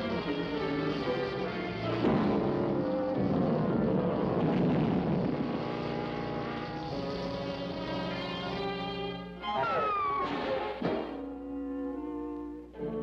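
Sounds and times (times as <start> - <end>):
orchestral music: 5.2 - 13.0.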